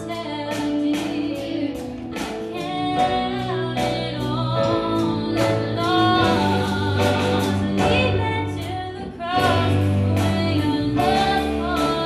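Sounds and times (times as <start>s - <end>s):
church band playing worship song: 0.0s - 12.0s
woman singing lead: 0.0s - 12.0s.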